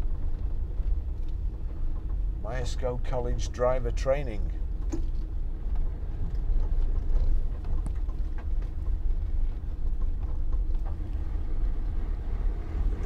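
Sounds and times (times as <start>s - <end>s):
low engine drone: 0.0s - 13.0s
road noise: 0.0s - 13.0s.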